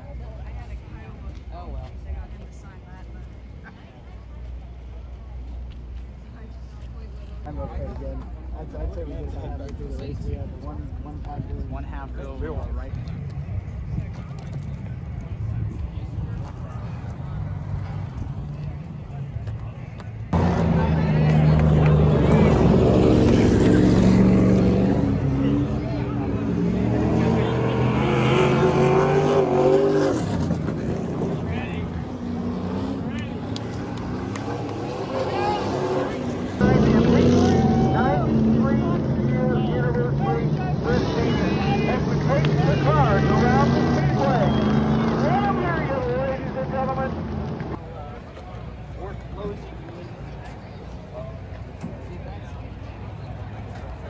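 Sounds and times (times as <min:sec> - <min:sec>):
people's voices: 0:00.0 - 0:54.0
race car engines droning: 0:00.0 - 0:54.0.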